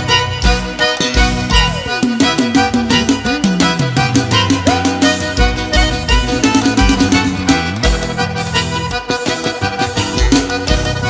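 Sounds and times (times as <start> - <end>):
band playing held low notes: 0.0 - 11.0
percussion strokes: 0.0 - 11.0.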